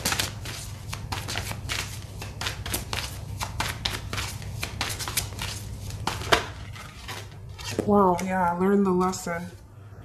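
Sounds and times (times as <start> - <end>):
cards being shuffled: 0.0 - 8.4.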